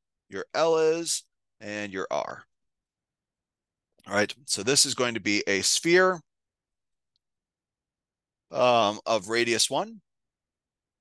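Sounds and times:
man speaking: 0.3s - 2.5s, 4.0s - 6.3s, 8.5s - 10.0s.

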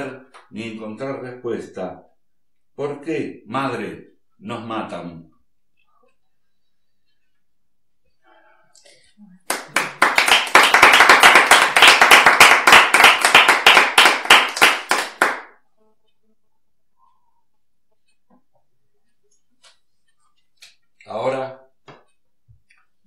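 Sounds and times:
people clapping: 9.4s - 15.6s.

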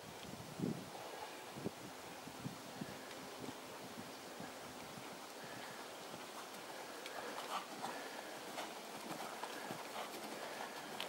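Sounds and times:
horse hooves on sand: 3.0s - 11.0s.

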